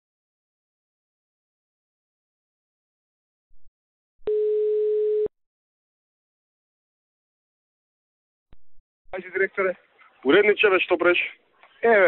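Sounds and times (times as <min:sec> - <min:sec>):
telephone ringback tone: 0:04.3 - 0:05.3.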